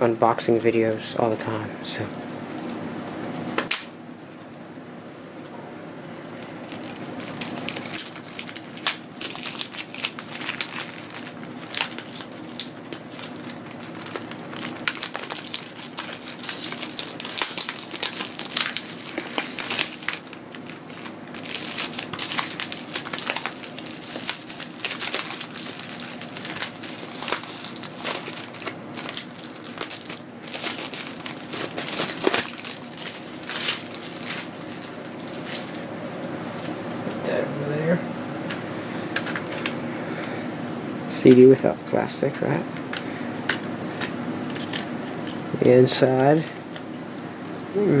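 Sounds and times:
shrink-wrap crinkling: 0:01.8 - 0:04.0, 0:06.4 - 0:36.8.

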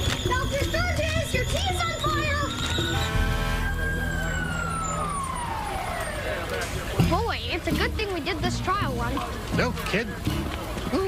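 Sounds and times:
fire engine siren wailing: 0:00.0 - 0:07.6.

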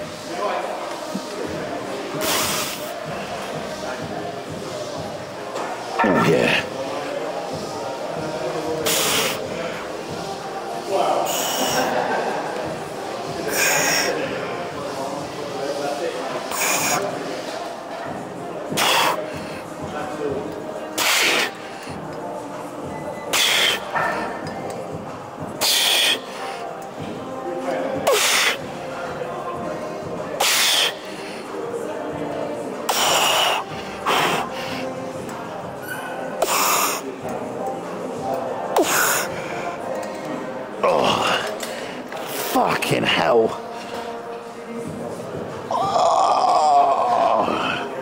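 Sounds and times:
gym background music: 0:00.0 - 0:48.0.

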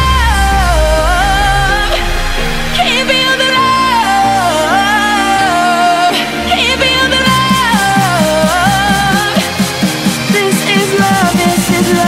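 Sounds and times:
pop song with gliding melody: 0:00.0 - 0:12.0
steady beat: 0:07.3 - 0:12.0.

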